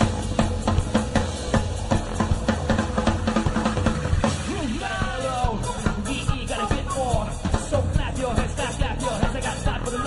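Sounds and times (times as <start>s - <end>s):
drum kit beat: 0.0s - 10.0s
sustained bass: 0.0s - 10.0s.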